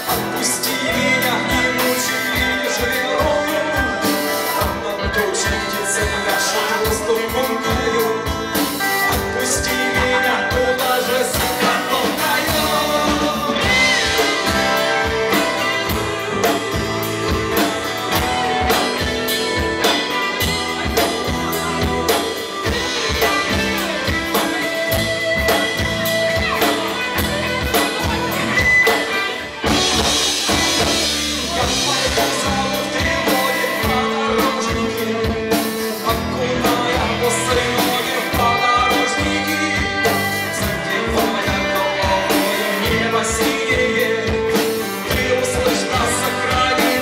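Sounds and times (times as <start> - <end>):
rock band playing: 0.0 - 47.0.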